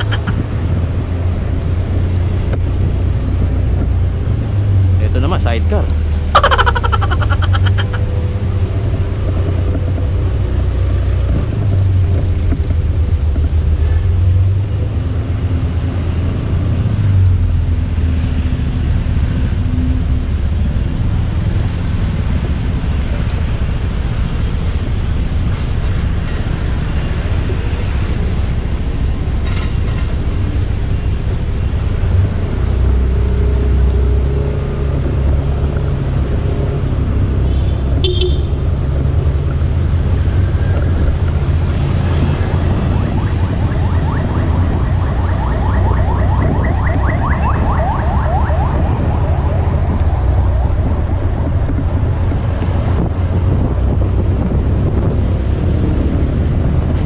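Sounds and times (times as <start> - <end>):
passing car traffic: 0.0 - 57.0
wind buffeting microphone: 45.8 - 57.0.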